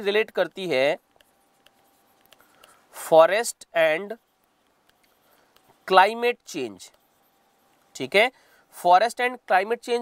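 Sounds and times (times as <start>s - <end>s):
stylus tapping and scratching: 0.0s - 8.2s.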